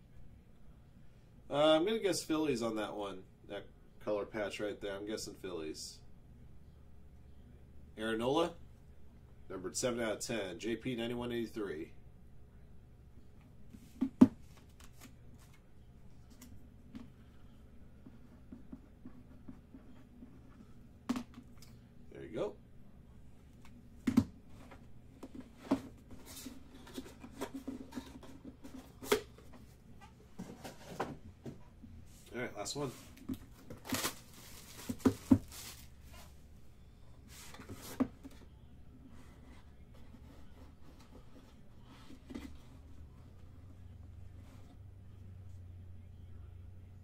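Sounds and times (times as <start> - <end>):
steady low hum: 0.0 - 47.0.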